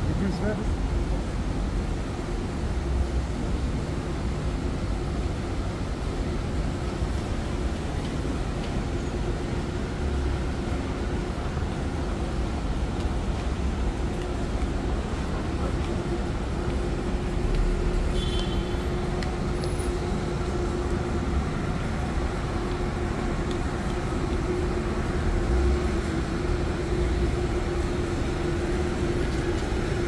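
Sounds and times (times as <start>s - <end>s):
road traffic: 0.0s - 30.0s.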